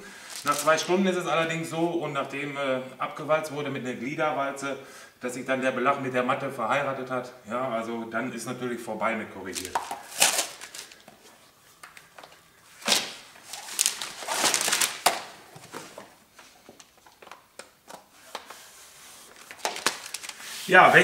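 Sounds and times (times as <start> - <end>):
plastic film rustling: 0.0 - 1.2, 9.5 - 21.0.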